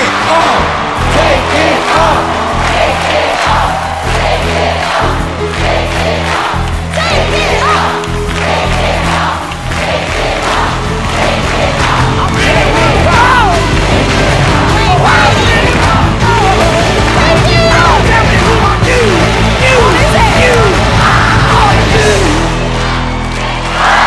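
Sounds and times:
audience cheering and screaming: 0.0s - 24.0s
reveal music with pounding bass: 0.0s - 24.0s.

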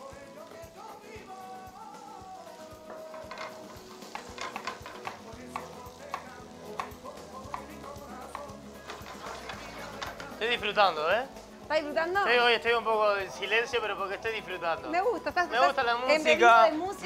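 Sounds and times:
background music: 0.0s - 17.0s
shrimp sizzling in oil: 0.0s - 17.0s.

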